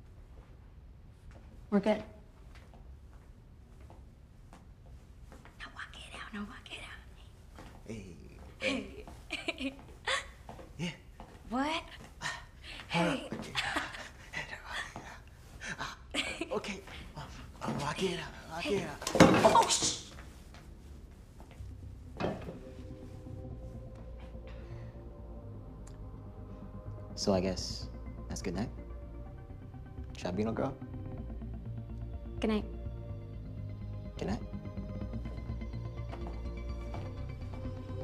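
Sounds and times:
soft background music: 5.0 - 38.0
people whispering: 5.6 - 9.0.

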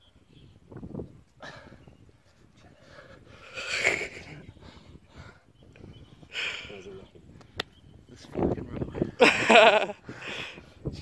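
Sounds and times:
person breathing hard: 2.6 - 3.8, 10.0 - 10.8.

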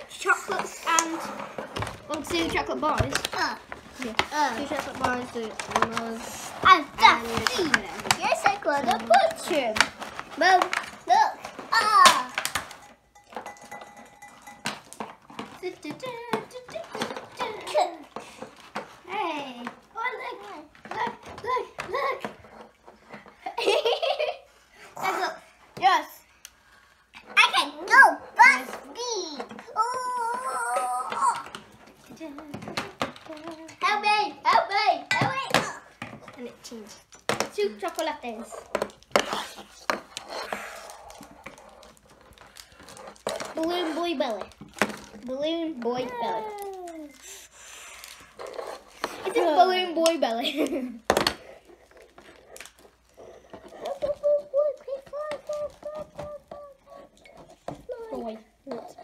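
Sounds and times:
child's voice: 0.0 - 12.4, 15.6 - 18.1, 19.0 - 22.4, 27.4 - 38.6, 43.5 - 47.2, 49.2 - 51.0, 53.8 - 57.1, 57.7 - 59.0
plastic packaging rattling: 1.5 - 18.9, 36.1 - 56.3.

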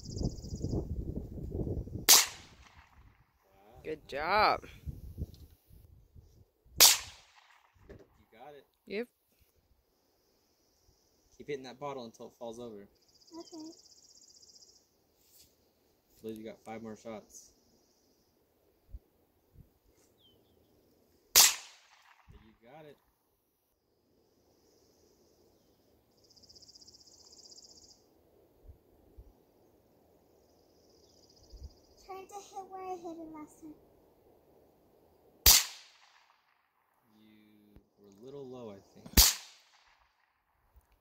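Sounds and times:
rifle shot: 2.1 - 3.1, 6.8 - 7.9, 21.3 - 22.4, 35.4 - 36.6, 39.1 - 40.3.

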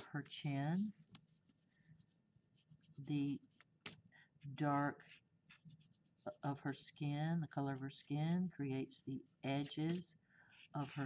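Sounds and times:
pencil shading on paper: 0.0 - 4.0, 4.7 - 8.4.

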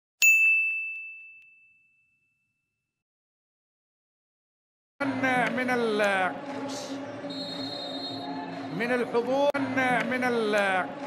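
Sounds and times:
notification bell ding: 0.2 - 2.6.

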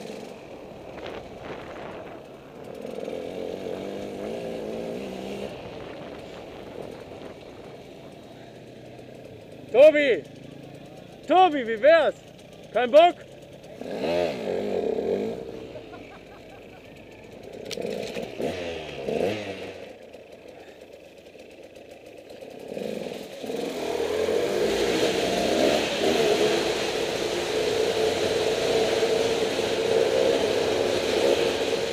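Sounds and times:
vehicle engine revving: 0.0 - 20.9, 22.3 - 31.9.

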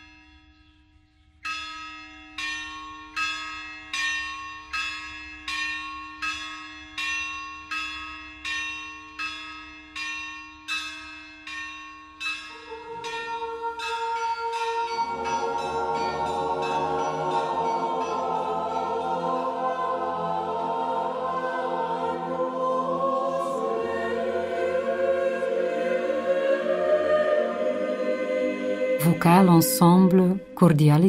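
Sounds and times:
sustained musical chord: 12.6 - 31.0.

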